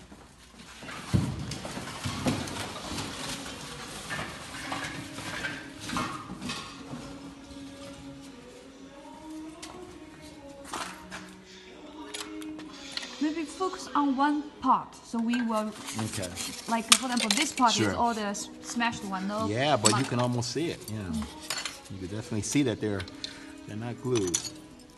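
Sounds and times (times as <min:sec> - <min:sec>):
hard pieces clattering and knocking: 0:24.1 - 0:24.6.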